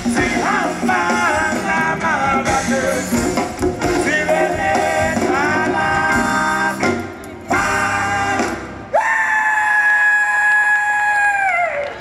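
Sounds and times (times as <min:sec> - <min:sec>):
person singing: 0:00.0 - 0:09.0.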